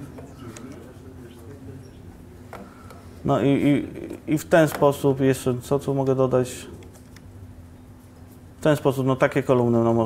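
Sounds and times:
faint murmur of a voice: 0.0 - 4.2.

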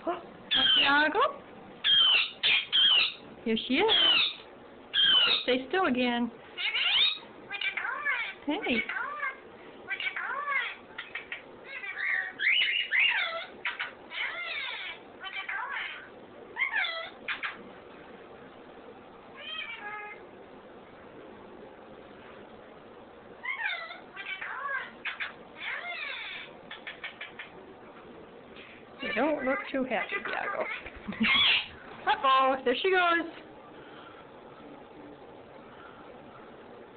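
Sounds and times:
parrots squawking and chirping: 0.5 - 5.6, 6.6 - 17.6, 19.4 - 20.2, 23.4 - 27.6, 28.6 - 31.9.

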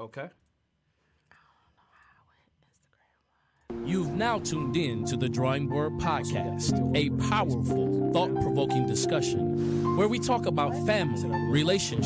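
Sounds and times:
faint whispered voice: 1.3 - 3.7.

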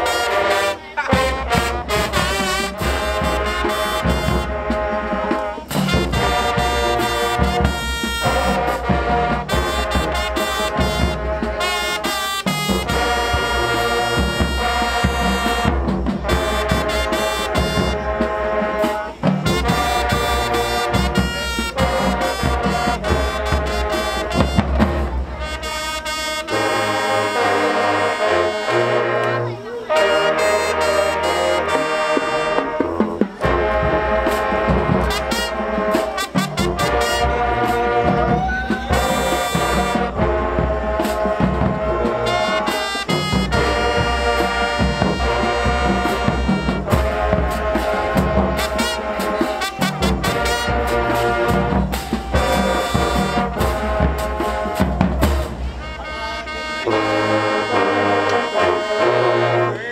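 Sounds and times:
drumline pounding: 0.0 - 59.9
marching band brass: 0.0 - 59.9.

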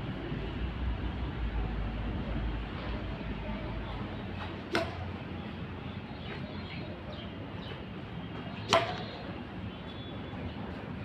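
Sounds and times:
racket striking ball: 4.7 - 5.2, 8.6 - 9.3.

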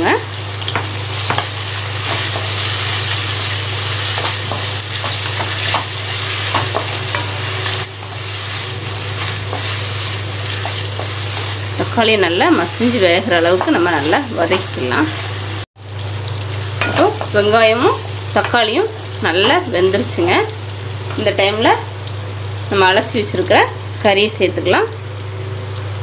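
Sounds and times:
vegetables sizzling in hot oil: 0.0 - 26.0
spatula scraping and tapping pan: 0.7 - 3.2, 4.0 - 11.6.

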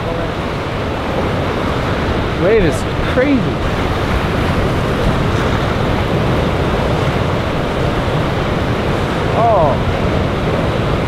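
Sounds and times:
surf breaking on reef: 0.0 - 11.0
wind noise on microphone: 0.0 - 11.0.

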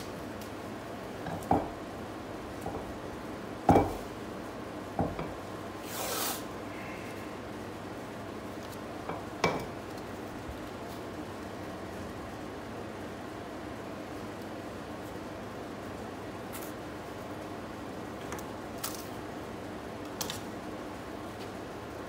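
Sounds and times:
knocks on wooden bench: 3.7 - 4.0, 5.0 - 5.3.

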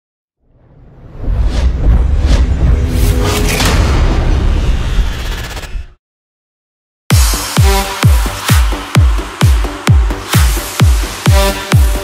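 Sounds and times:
whoosh building into deep rumble: 0.4 - 6.0.

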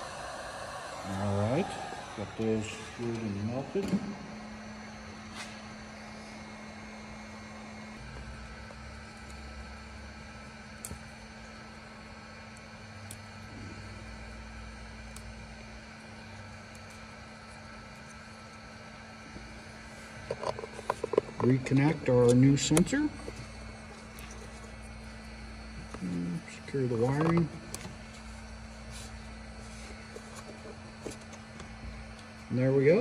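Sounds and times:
low electrical hum: 0.0 - 33.0.

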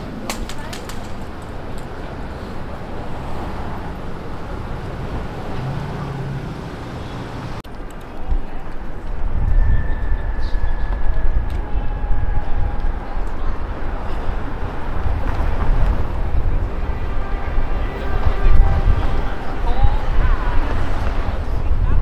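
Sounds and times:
passing cars and tyres: 0.0 - 22.0.

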